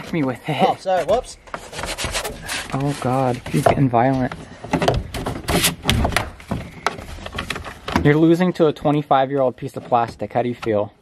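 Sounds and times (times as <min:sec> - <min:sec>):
plastic trim knocking and creaking: 0:03.3 - 0:09.0.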